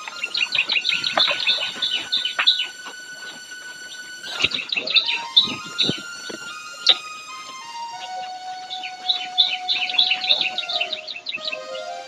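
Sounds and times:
faint steady tone: 0.0 - 12.0
small birds chirping: 0.0 - 12.0.

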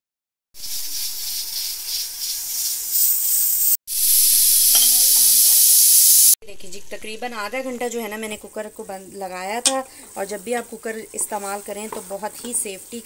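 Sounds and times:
pressure cooker steam hissing: 0.6 - 6.4.

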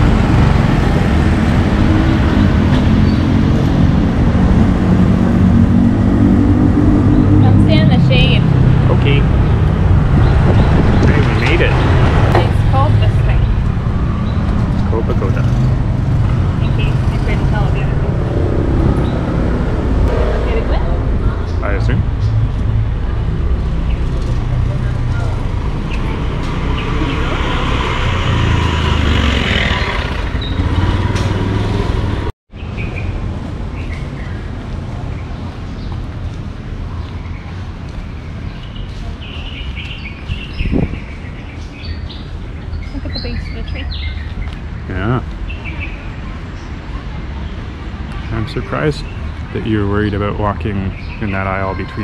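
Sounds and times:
low traffic rumble: 0.0 - 52.0
small birds chirping: 10.2 - 18.2, 36.9 - 52.0.

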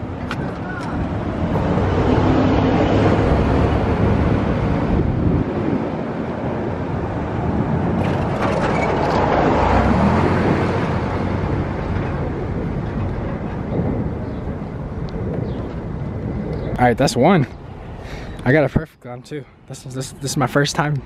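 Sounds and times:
street traffic rumble: 0.0 - 21.0
vehicle passing close by: 1.3 - 12.8.

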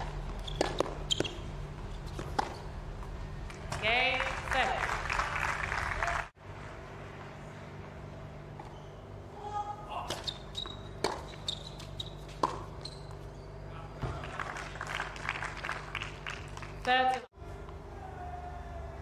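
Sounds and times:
racquet striking tennis ball: 0.0 - 1.4, 2.1 - 2.6, 11.0 - 12.8
shoes squeaking on court: 0.0 - 3.8, 8.5 - 9.2, 10.0 - 14.2.

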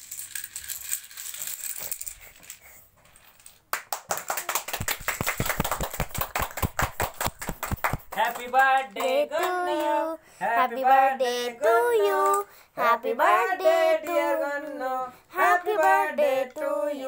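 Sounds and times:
dominoes clattering on tiles: 0.0 - 3.6
sharp clacks: 3.8 - 9.9.

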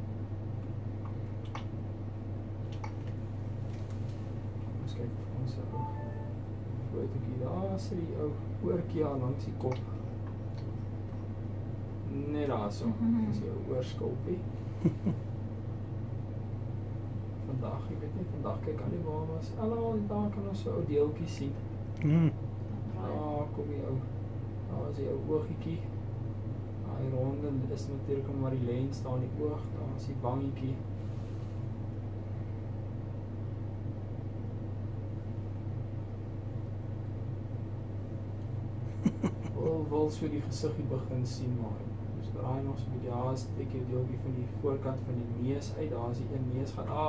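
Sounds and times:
low machine hum: 0.0 - 47.0.

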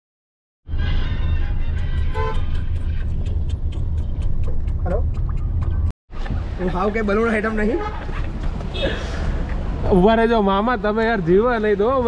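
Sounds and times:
vehicle engine rumble: 0.7 - 12.0
horn toot: 2.0 - 2.7.

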